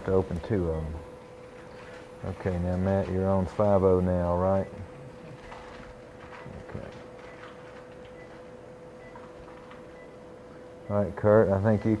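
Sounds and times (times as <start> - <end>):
faint equipment tone: 9.9 - 12.0.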